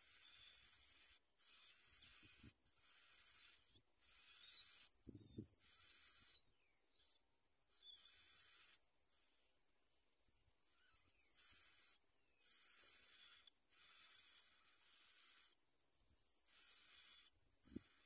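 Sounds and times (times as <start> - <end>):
nestlings harsh hissing calls: 0.0 - 4.9, 5.6 - 6.4, 8.0 - 8.8, 11.3 - 15.6, 16.5 - 18.0.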